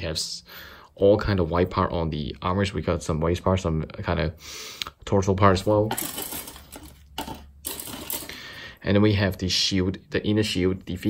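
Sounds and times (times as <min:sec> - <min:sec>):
plastic pieces clattering on table: 0:05.8 - 0:08.5.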